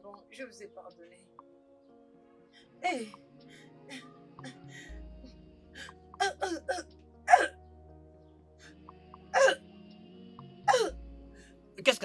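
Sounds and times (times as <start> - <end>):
background music: 0.0 - 12.0
woman retching: 6.2 - 7.6.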